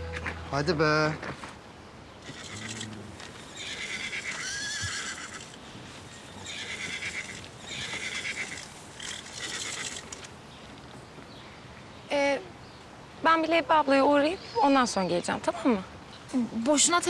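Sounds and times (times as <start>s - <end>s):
horse whinnying: 2.2s - 5.6s, 6.4s - 10.2s.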